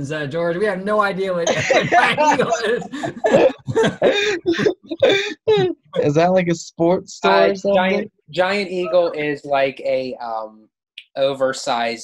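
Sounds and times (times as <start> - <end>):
man laughing hard: 1.4 - 5.9.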